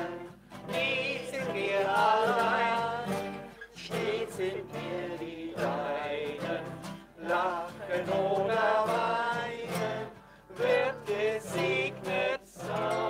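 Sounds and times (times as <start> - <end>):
acoustic guitars strummed: 0.0 - 13.0
group singing a hymn: 0.0 - 13.0.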